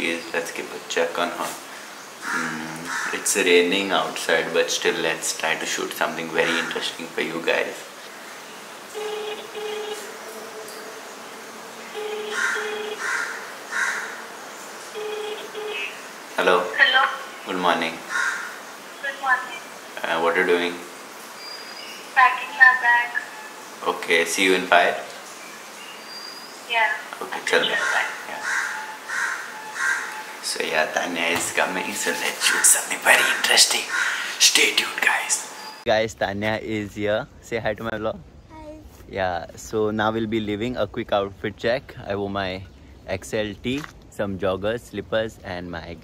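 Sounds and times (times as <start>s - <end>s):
crows cawing: 1.7s - 3.6s, 6.3s - 7.2s, 12.0s - 16.0s, 18.0s - 19.0s, 27.5s - 30.5s, 32.4s - 34.4s
bird calling: 1.7s - 3.7s, 6.0s - 19.9s, 21.3s - 23.9s, 25.2s - 35.9s
phone ringback tone: 8.9s - 10.1s, 11.9s - 13.0s, 14.9s - 16.0s.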